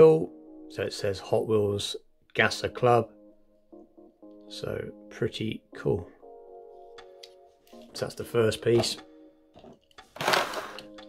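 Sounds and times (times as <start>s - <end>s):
faint background music: 0.0s - 11.0s
plastic blister tray crackling: 9.7s - 11.0s.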